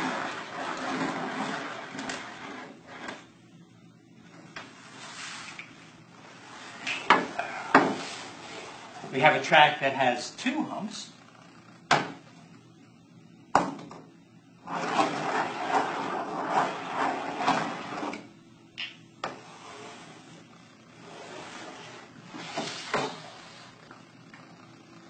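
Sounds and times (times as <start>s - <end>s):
balls rolling on tracks: 0.0s - 3.3s, 13.6s - 24.5s.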